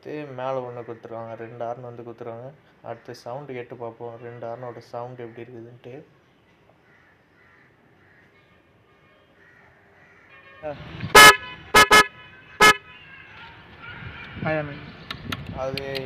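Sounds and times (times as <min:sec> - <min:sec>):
motorcycle horn beeps: 0:11.2 - 0:12.8.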